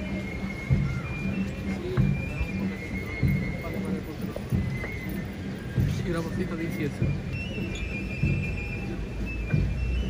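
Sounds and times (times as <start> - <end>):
crowd voices: 0.0 - 10.0
drum beats: 0.0 - 10.0.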